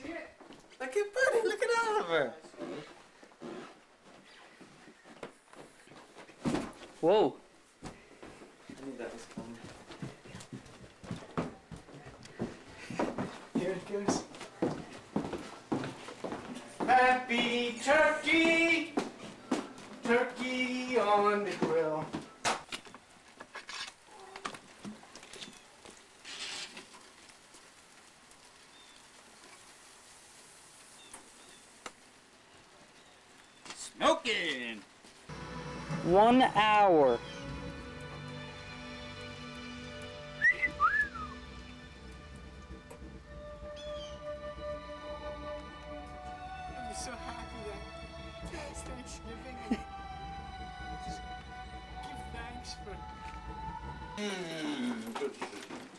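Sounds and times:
sizzle-like hiss: 25.8s - 33.6s
person laughing: 49.6s - 50.0s.

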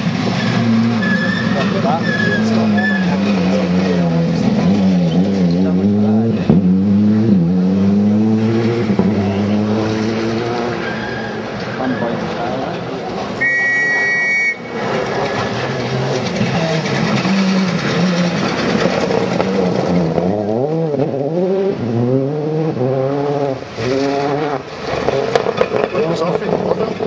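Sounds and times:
rally car engine revving: 0.0s - 13.4s, 14.6s - 27.0s.

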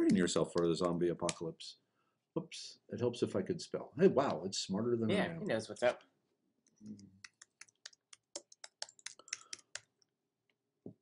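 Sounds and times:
computer keyboard typing: 7.2s - 10.0s.

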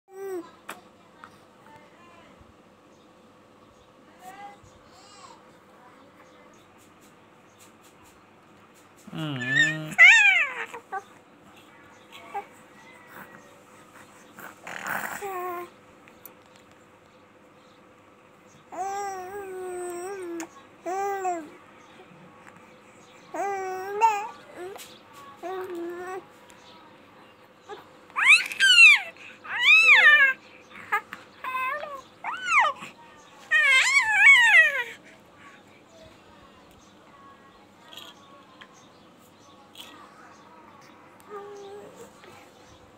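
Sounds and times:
baby whimpering: 9.1s - 11.0s, 13.0s - 15.7s, 27.7s - 35.1s
baby crying: 9.2s - 11.0s, 28.2s - 32.9s, 33.5s - 35.0s
baby squealing: 28.2s - 30.4s, 33.5s - 34.9s.

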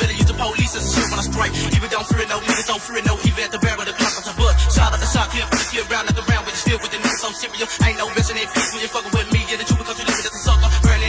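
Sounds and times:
person rapping: 0.0s - 11.0s
rap beat with deep kick drums: 0.0s - 11.0s.

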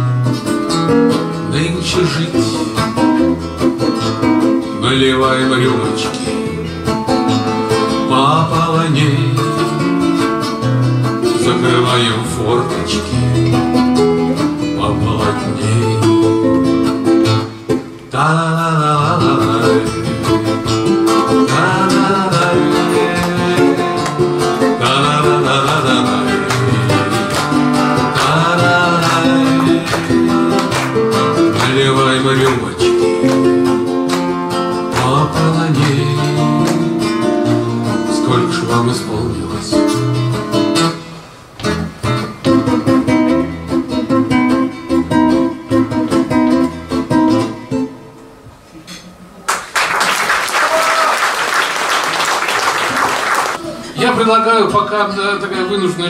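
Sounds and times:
acoustic guitars playing: 0.0s - 49.2s, 51.6s - 56.0s
man singing: 1.2s - 10.1s, 11.1s - 13.4s, 14.6s - 16.5s, 18.1s - 33.9s, 34.5s - 40.3s.

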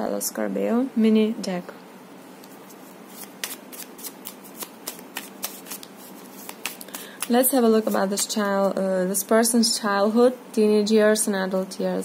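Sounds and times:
cards being shuffled by hand: 2.4s - 8.7s.

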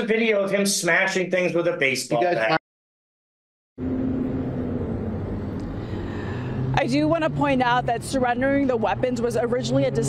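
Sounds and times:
low engine rumble: 3.8s - 10.0s.

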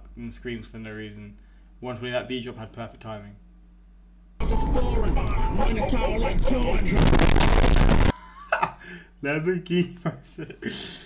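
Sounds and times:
man laughing: 8.0s - 9.1s, 10.0s - 11.0s.

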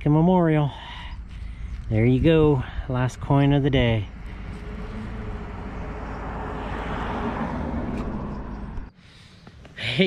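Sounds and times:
distant engine rushing: 2.6s - 9.4s.

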